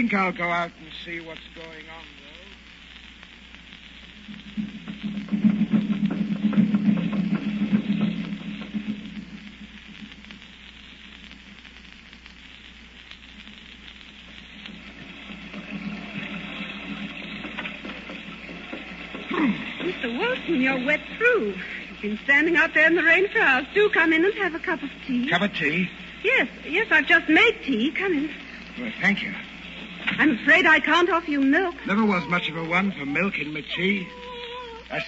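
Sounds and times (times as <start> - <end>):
steady rain hiss: 0.0 - 35.0.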